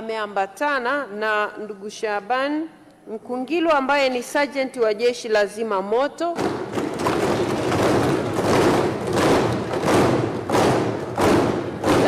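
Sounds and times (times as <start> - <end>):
people thumping desks in applause: 6.4 - 12.0.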